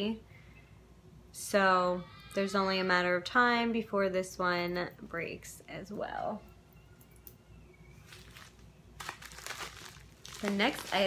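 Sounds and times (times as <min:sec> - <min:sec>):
packaging rustling: 0:08.0 - 0:11.0.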